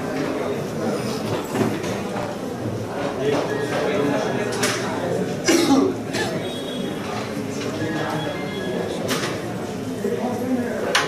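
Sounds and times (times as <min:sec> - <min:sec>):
murmur of voices: 0:00.0 - 0:11.0
person coughing: 0:05.4 - 0:06.4.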